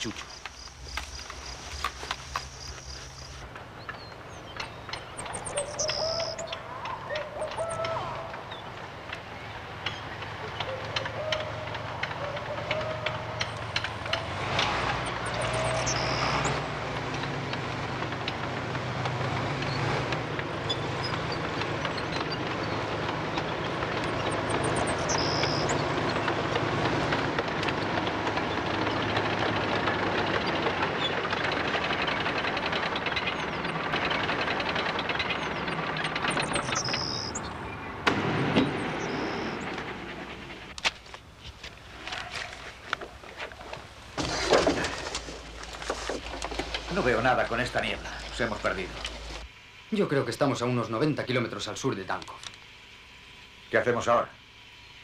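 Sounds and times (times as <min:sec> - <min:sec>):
tank engine hum: 0:00.0 - 0:55.0.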